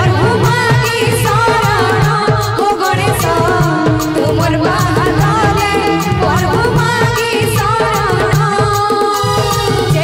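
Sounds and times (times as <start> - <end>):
tabla and octapad beat: 0.0 - 10.0
woman singing: 0.0 - 10.0.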